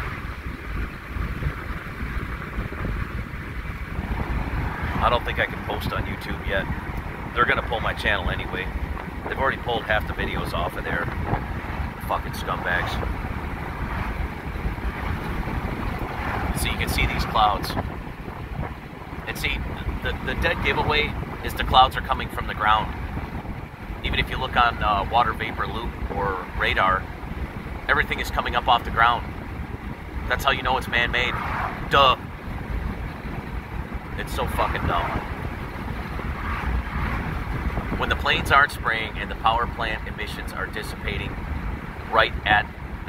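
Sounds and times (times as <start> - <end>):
vehicle rumble from inside cab: 0.0 - 43.0
person speaking: 12.0 - 13.0, 19.3 - 22.9, 34.2 - 35.2, 42.1 - 42.7.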